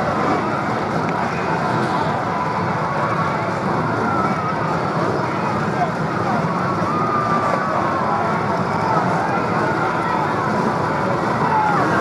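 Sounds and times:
race car engines running: 0:00.0 - 0:12.0.

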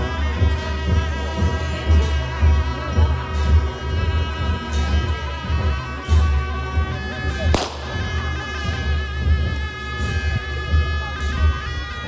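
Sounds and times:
ritual music with held notes: 0:00.0 - 0:12.0.

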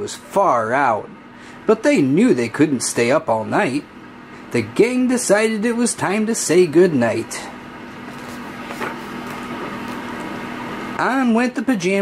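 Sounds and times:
book pages turning: 0:08.0 - 0:10.4.

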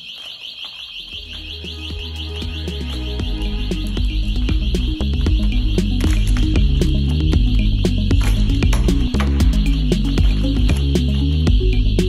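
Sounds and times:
warbling electronic alarm: 0:00.0 - 0:12.0
background music with bass beat: 0:01.1 - 0:12.0.

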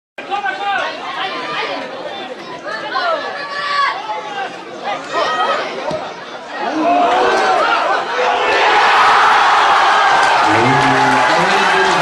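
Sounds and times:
people talking and calling out: 0:00.2 - 0:08.7.

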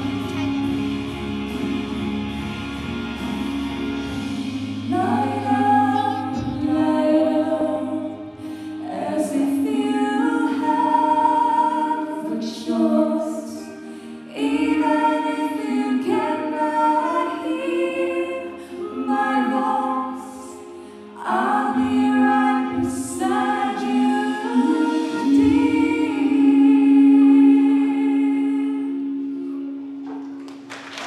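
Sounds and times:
mixed choir singing chord: 0:04.4 - 0:30.2.

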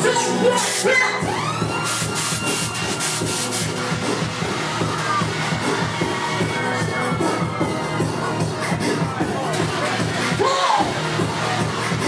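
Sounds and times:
club music with bass beat: 0:00.0 - 0:12.0
gas cannon hissing blasts: 0:01.8 - 0:03.9.

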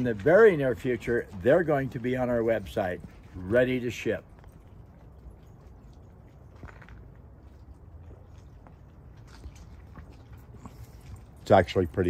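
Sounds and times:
faint clicks and rustles: 0:00.0 - 0:12.0.

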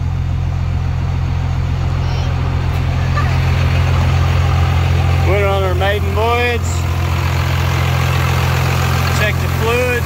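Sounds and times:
pickup engine idling: 0:00.0 - 0:10.0.

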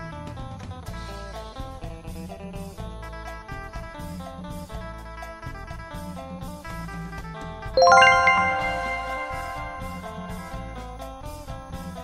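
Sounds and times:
background music: 0:07.8 - 0:10.6
bell-like chime notes: 0:07.8 - 0:10.7.

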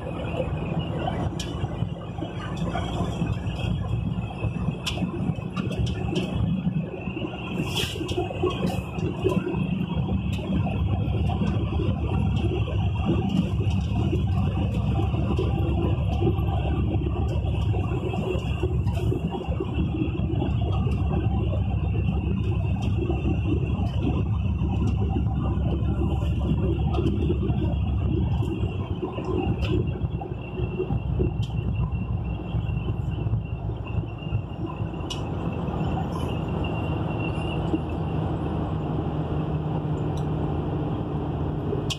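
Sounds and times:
vehicle engine and road rumble: 0:00.0 - 0:41.9.

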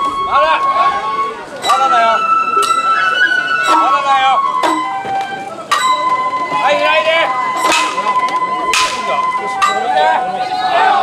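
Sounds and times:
flute holding high note: 0:00.0 - 0:10.4
people shouting: 0:00.6 - 0:05.1, 0:05.7 - 0:11.0.

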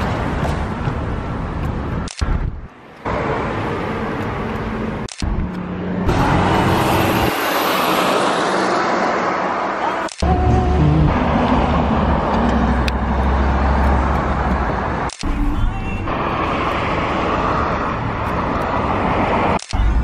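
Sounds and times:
cars passing: 0:00.0 - 0:20.0.

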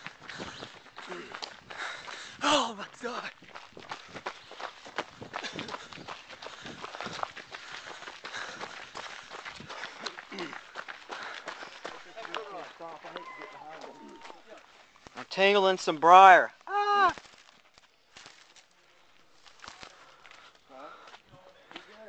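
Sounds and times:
running footsteps on dirt: 0:00.0 - 0:22.0.

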